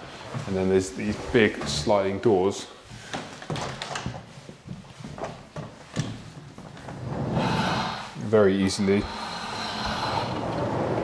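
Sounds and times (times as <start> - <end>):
footsteps on laminate flooring: 2.8 - 7.8.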